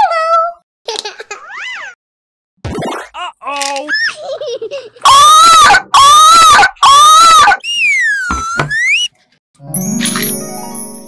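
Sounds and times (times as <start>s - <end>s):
loud wailing cries: 5.1s - 9.1s
ringing sparkle chime: 9.6s - 11.0s.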